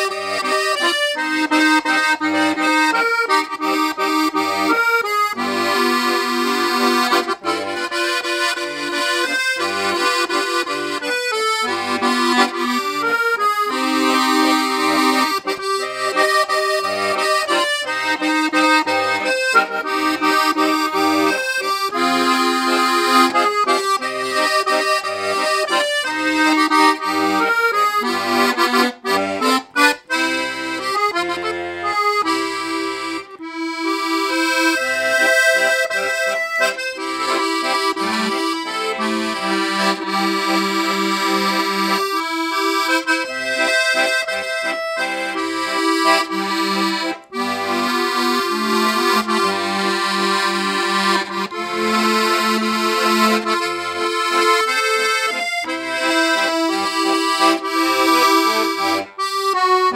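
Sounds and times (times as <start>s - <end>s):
accordion playing melody: 0.0s - 59.9s.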